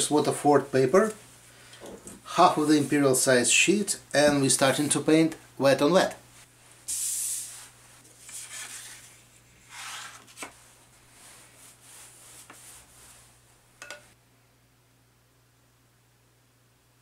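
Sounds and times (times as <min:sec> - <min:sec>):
brush swishing in water: 0:06.9 - 0:13.4.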